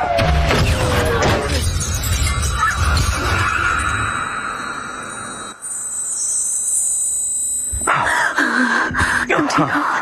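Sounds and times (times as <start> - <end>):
glass shattering: 0.5 - 5.1
steady high tone: 3.4 - 9.0.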